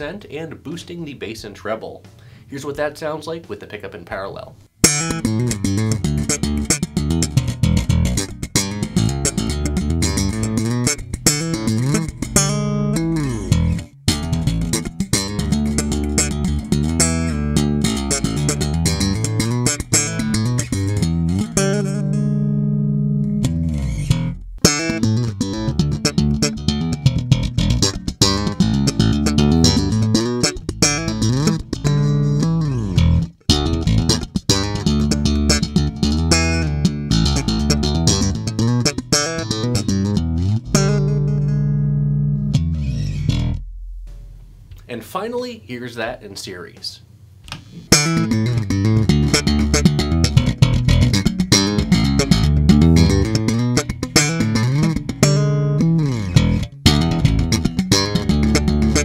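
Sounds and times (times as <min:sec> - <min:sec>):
slap electric bass line: 0:04.8 - 0:44.9, 0:47.5 - 0:59.0.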